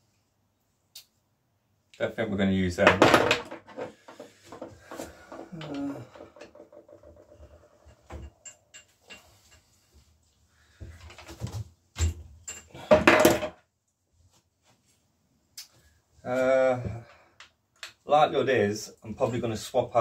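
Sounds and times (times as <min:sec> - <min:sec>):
person humming: 0:05.5 - 0:06.2.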